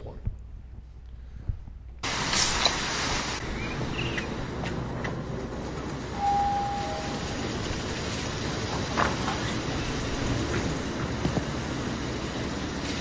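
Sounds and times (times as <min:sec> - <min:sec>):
lawn sprinklers hissing: 0:02.0 - 0:13.0
brief high tone: 0:06.2 - 0:07.3.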